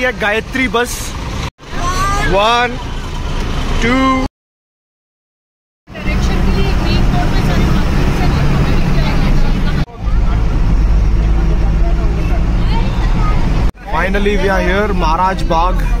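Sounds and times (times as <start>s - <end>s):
bus engine and road rumble: 0.0s - 4.3s, 5.9s - 16.0s
children chattering: 1.7s - 2.4s, 6.1s - 14.9s.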